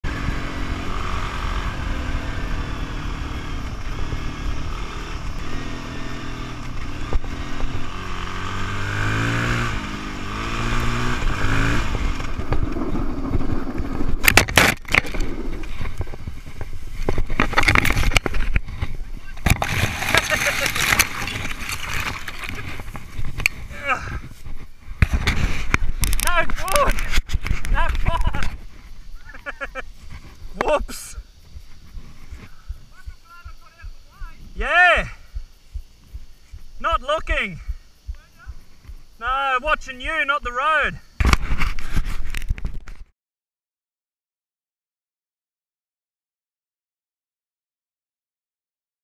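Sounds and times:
dirt bike engine revving: 0.0 - 27.1
bike scraping on ground: 0.1 - 33.2, 41.2 - 43.1
bike crashing knocks: 14.1 - 16.2, 17.0 - 24.3.

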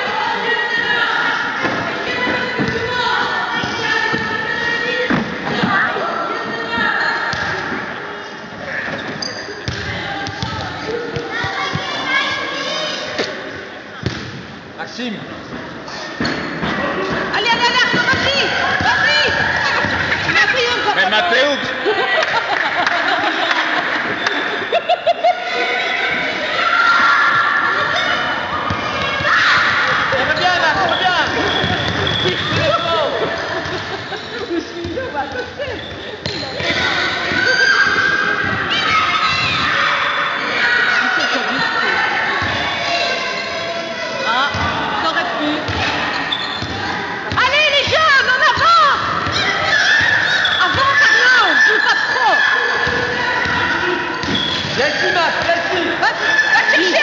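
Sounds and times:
basketball bouncing on gym floor: 9.6 - 11.9, 30.3 - 32.9, 52.8 - 54.8.

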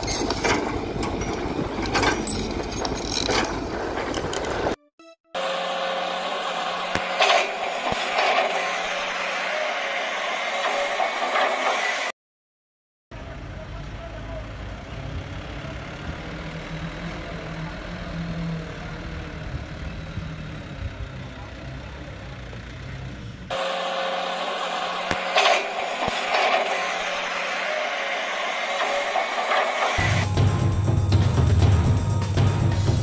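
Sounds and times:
diesel truck engine rumbling: 0.0 - 4.8, 13.2 - 33.0.

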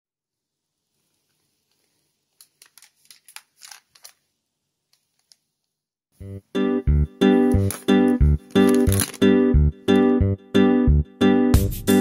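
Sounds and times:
plastic bag crinkling: 1.8 - 4.4, 7.6 - 9.3.

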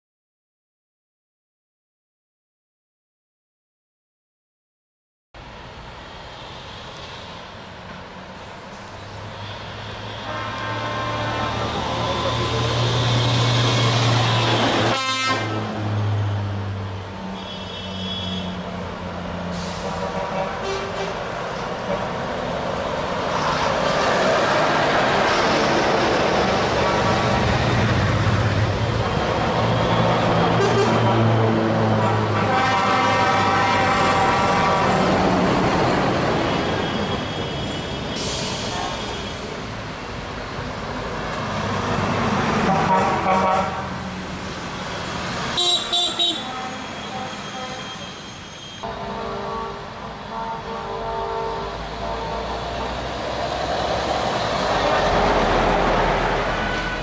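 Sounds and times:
diesel trucks driving past: 5.4 - 57.0
truck horn blasts: 10.0 - 12.4, 14.3 - 15.7, 17.3 - 18.6, 19.6 - 21.2, 29.8 - 35.3, 42.6 - 44.0, 45.6 - 53.1.

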